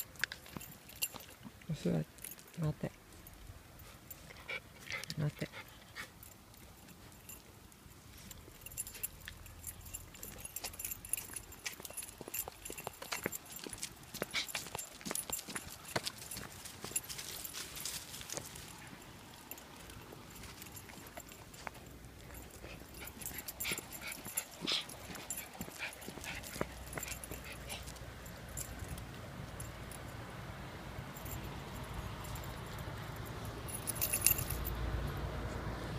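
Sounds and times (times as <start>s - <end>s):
dog tags jingling: 0.0s - 30.4s, 31.0s - 35.3s.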